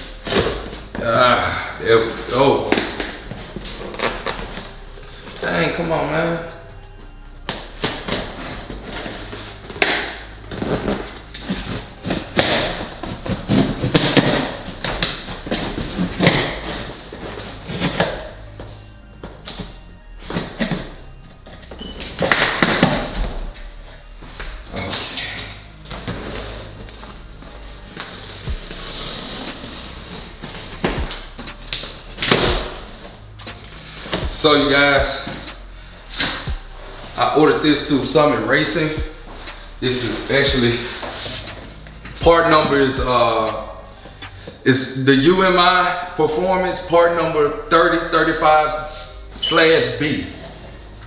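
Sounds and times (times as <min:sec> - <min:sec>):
background music with bass line: 0:00.0 - 0:51.0.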